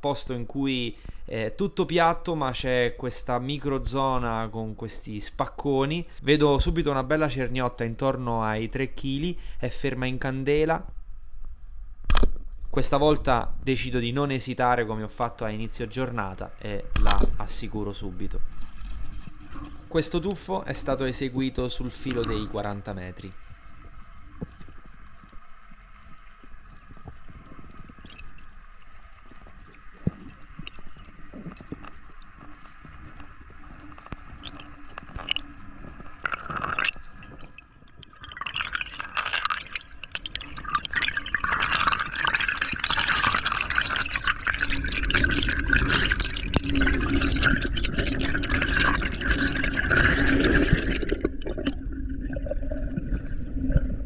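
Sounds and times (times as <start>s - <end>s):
water rushing: 15.0s - 54.0s.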